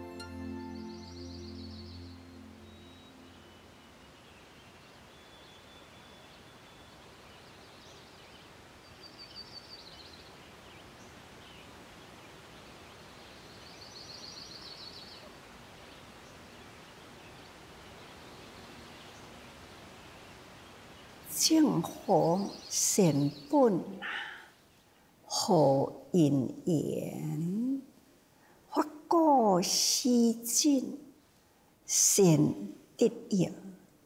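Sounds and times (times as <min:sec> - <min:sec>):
soft steady hiss: 0:00.0 - 0:34.0
bird calls: 0:20.0 - 0:24.8
rapid high bird trills: 0:23.9 - 0:24.6.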